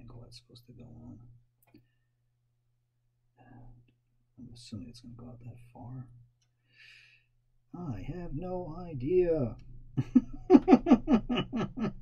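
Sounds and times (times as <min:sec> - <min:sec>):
man laughing: 0:10.0 - 0:12.0.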